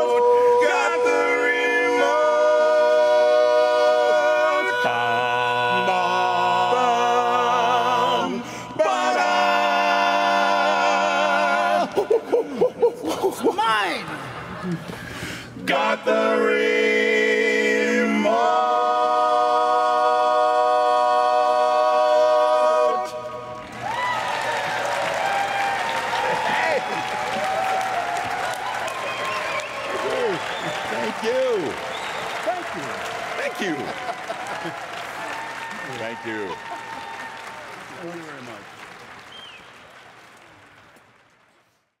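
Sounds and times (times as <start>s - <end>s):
a cappella quartet chord: 0.0s - 12.4s, 15.6s - 23.6s
audience applause and cheering: 23.1s - 42.0s.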